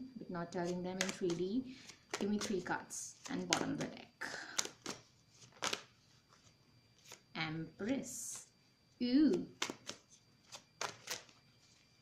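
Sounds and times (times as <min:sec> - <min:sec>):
cards rustling: 0:00.6 - 0:07.2, 0:09.5 - 0:12.0.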